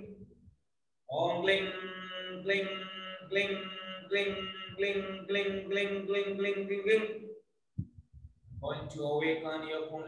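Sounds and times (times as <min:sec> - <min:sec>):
man chanting mantra: 0:01.1 - 0:07.2.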